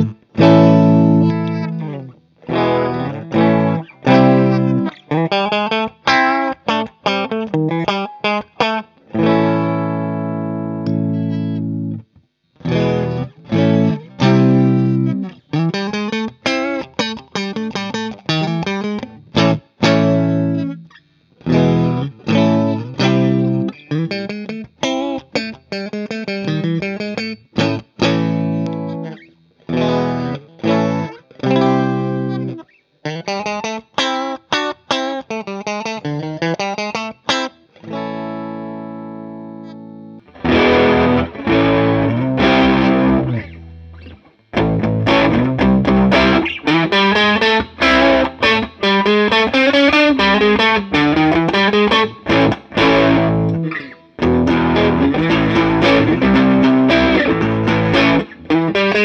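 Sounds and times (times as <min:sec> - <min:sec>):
electric guitar chords and riffs: 0:00.0 - 0:59.0.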